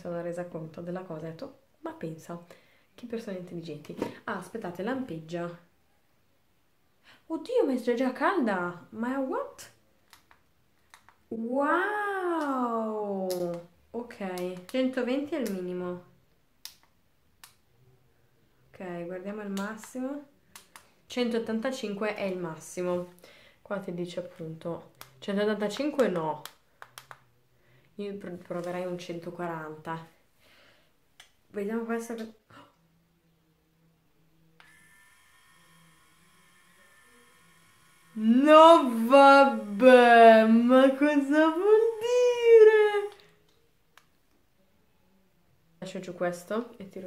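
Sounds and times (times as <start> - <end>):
faint high whine: 34.3 - 40.0.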